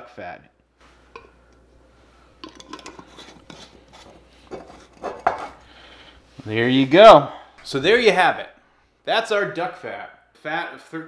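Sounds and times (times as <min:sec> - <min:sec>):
metal lid clinking on glass: 0:02.4 - 0:03.1.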